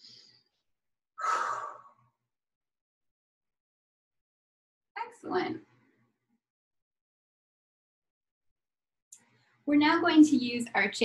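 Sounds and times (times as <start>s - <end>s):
sigh-like exhale: 1.2s - 2.0s
woman breathing: 1.2s - 2.2s.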